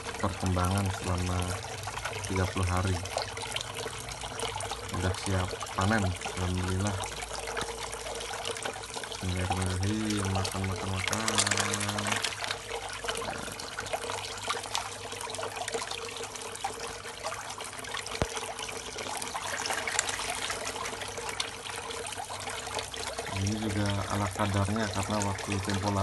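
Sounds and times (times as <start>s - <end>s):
water splashing into tub: 0.0s - 26.0s.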